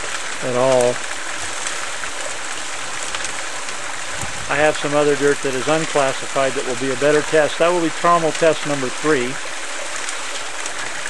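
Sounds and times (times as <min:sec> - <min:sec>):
muddy water pouring and splashing: 0:00.0 - 0:11.0.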